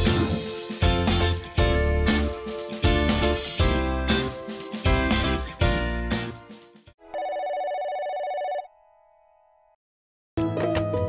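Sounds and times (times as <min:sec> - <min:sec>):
background music: 0:00.0 - 0:07.3, 0:10.4 - 0:11.0
electronic telephone ring: 0:07.1 - 0:08.7.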